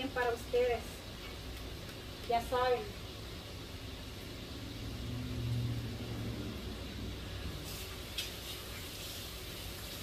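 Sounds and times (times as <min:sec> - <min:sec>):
vehicle engine rumble passing: 0:04.3 - 0:08.1
water running from tap: 0:07.6 - 0:10.0.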